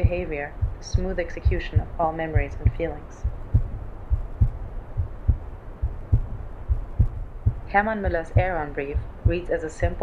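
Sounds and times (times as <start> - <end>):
low dull heartbeat thuds: 0.0 - 10.0.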